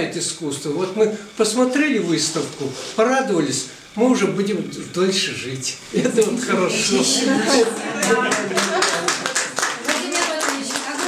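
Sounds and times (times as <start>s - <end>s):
voices talking: 0.4s - 11.0s
audience applauding: 7.0s - 11.0s.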